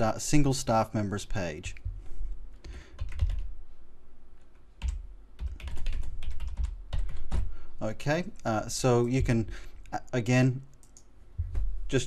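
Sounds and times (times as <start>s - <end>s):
typing on computer keyboard: 2.9s - 3.5s, 4.8s - 7.4s.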